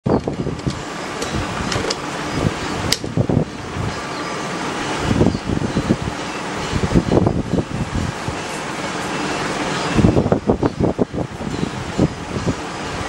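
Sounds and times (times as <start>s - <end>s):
rushing air noise: 0.1s - 13.0s.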